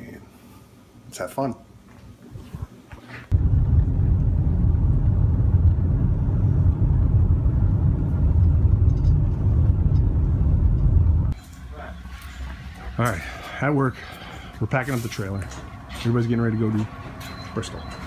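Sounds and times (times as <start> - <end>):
car interior road rumble: 3.3 - 11.4.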